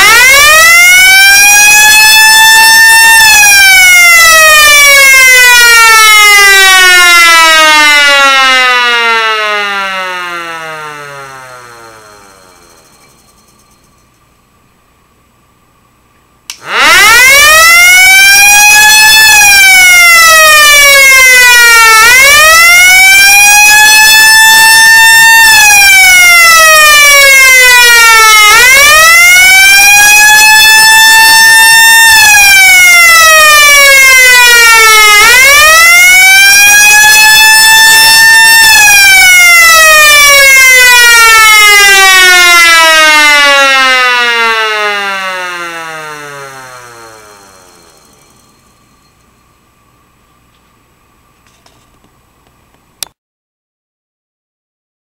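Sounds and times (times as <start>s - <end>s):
electric motor siren wailing: 0.0s - 13.2s, 16.5s - 49.1s.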